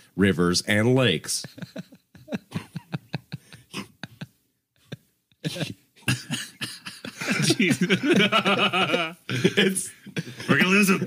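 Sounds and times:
person coughing: 5.5 - 8.1.

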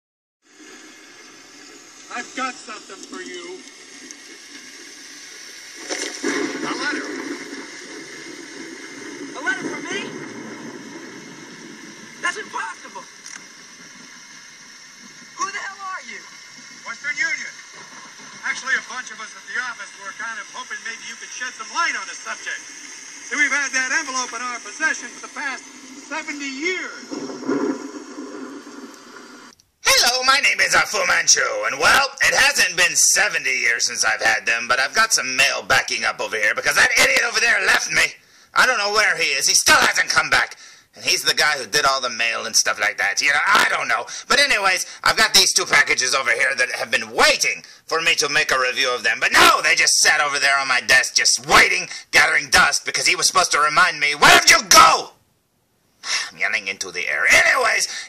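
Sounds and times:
rain hissing: 0.4 - 48.6, 57.2 - 58.0
man speaking: 2.1 - 3.6, 6.6 - 7.2, 9.3 - 10.2, 12.2 - 13.1, 15.4 - 17.6, 18.4 - 22.6, 23.3 - 27.1, 29.8 - 55.2, 56.1 - 58.0
faint movie soundtrack: 8.4 - 55.2.

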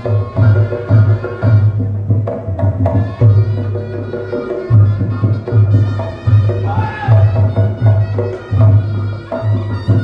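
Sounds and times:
heavy drum beats: 0.0 - 10.0
pitched gamelan melody: 0.0 - 10.0.

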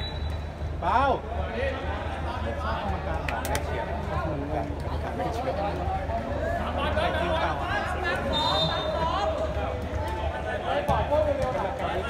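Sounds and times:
spectators talking: 0.0 - 12.0.

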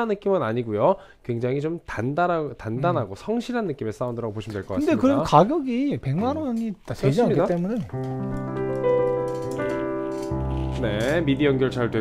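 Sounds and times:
grand piano notes and chords: 7.1 - 12.0
low bass piano note: 7.9 - 12.0.

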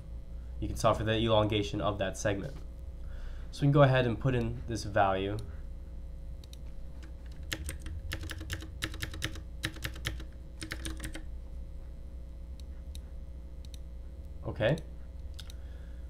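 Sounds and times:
low steady hum: 0.0 - 16.0
typing on computer keyboard: 7.2 - 11.2.

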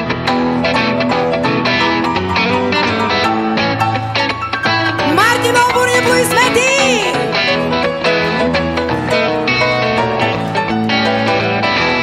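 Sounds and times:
electric guitar plucked notes: 0.0 - 12.0
grand piano: 0.0 - 12.0.

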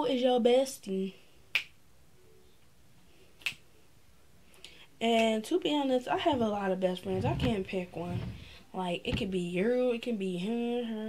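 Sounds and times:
finger snaps: 1.5 - 1.8, 3.4 - 3.6.

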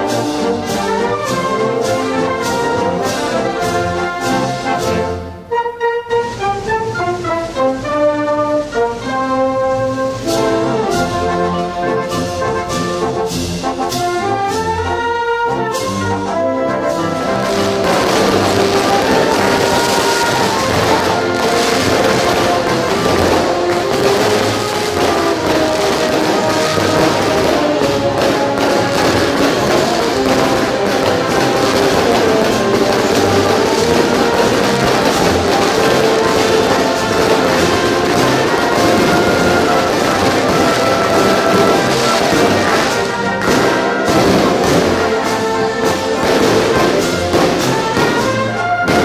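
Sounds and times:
music playing: 0.0 - 49.0.

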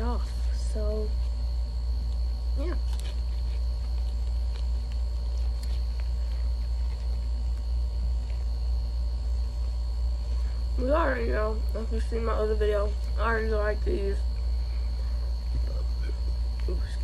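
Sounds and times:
steady low hum: 0.0 - 17.0
paper towel crinkling: 2.7 - 8.6.

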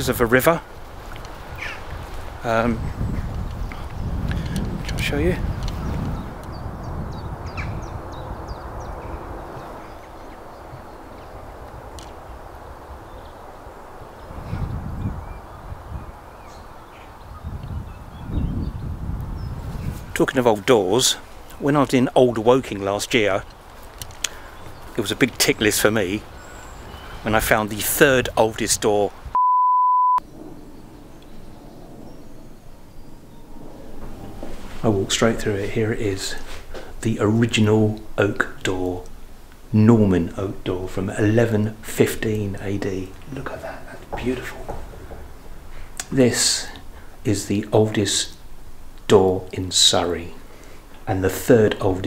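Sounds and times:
wind buffet on microphone: 0.0 - 21.8, 22.4 - 29.4, 30.2 - 52.0
birds chirping: 0.0 - 29.4, 30.2 - 52.0
test tone beep: 29.4 - 30.2
low background rumble: 30.2 - 52.0.

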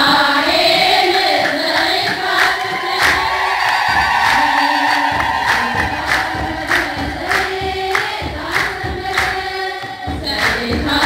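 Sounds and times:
congregation singing a hymn: 0.0 - 11.0
hand claps: 1.4 - 11.0.

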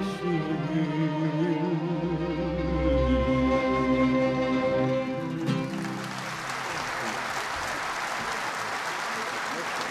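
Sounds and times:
audience applauding: 5.2 - 9.9.

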